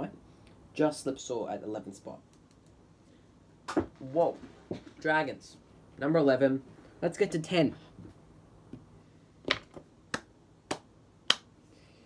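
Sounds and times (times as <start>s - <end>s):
finger snaps: 10.1s - 11.5s.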